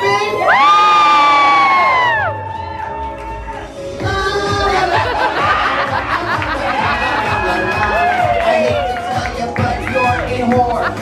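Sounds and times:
excited high-pitched whoop: 0:00.0 - 0:03.9, 0:06.8 - 0:09.2.

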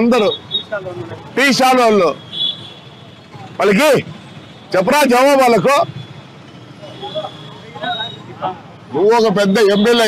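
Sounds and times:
traffic hum: 0:00.0 - 0:10.0.

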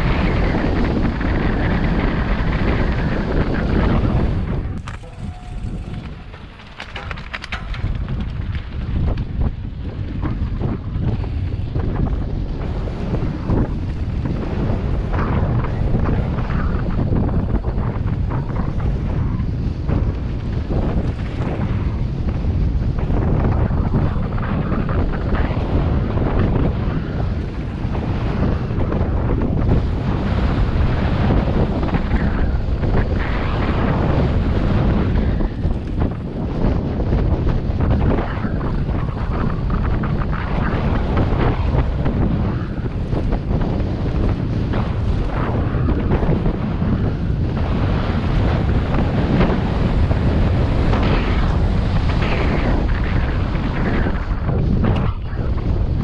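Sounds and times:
bike jolts on rough track: 0:00.0 - 0:54.6
bike tyres rolling: 0:00.0 - 0:56.0
wind rumbling on microphone: 0:00.0 - 0:56.0.

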